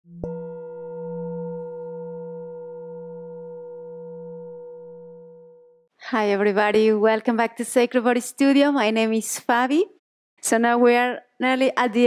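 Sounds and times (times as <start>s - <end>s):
struck bell tone ringing: 0.2s - 5.8s.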